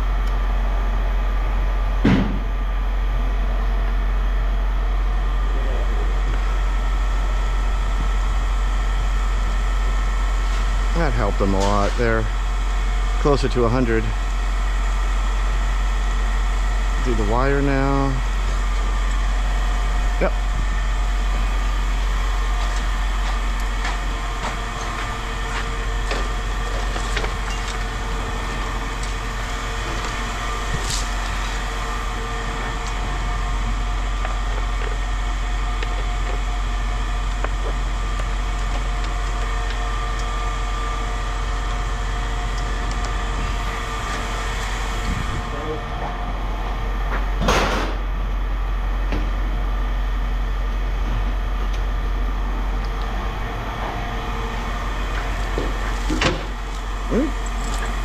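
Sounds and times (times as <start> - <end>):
low machine hum: 0.0 - 58.0.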